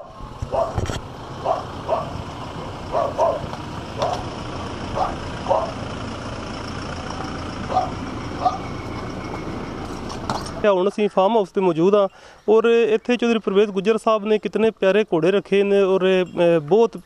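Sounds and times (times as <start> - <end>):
car engine low rumble: 0.0 - 11.6
dog barking: 0.5 - 0.8, 1.4 - 2.2, 2.9 - 4.3, 5.0 - 5.8, 7.7 - 8.7.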